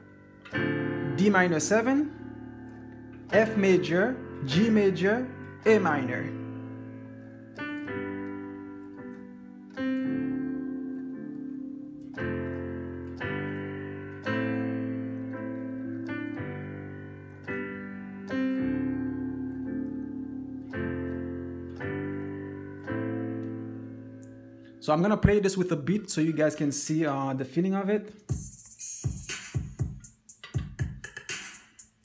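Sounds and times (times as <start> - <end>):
keyboard piano chords: 0.0 - 32.0.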